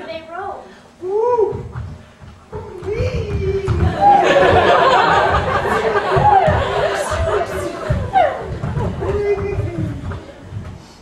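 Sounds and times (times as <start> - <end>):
low thuds: 1.3 - 11.0.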